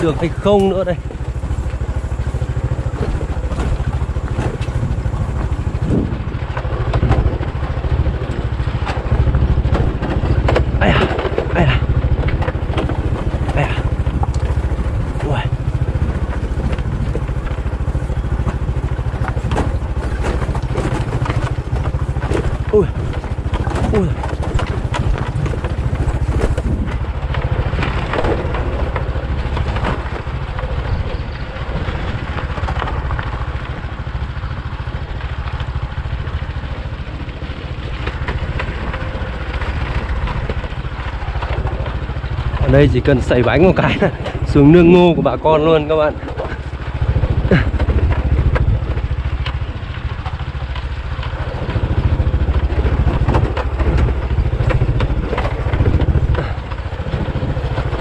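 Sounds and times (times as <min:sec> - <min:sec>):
knocks and rattles over stones: 0:00.0 - 0:58.0
small motorbike engine running: 0:00.0 - 0:58.0.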